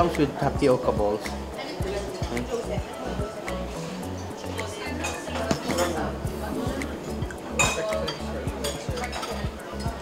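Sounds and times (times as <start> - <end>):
background music with bass line: 0.0 - 10.0
murmured talk: 1.1 - 10.0
dishes and cutlery clinking: 4.2 - 10.0.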